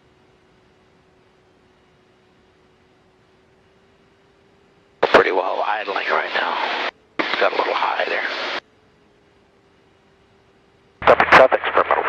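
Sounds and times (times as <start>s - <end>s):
faint headset hum: 0.0s - 12.0s
radio speech: 5.0s - 8.6s, 11.0s - 12.0s
radio transmission click: 5.0s - 8.6s, 11.0s - 12.0s.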